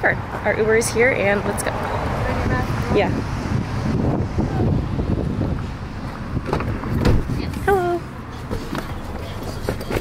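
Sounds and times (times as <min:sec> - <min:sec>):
wind rumbling on microphone: 0:01.0 - 0:08.2
car door clunks: 0:06.4 - 0:07.5.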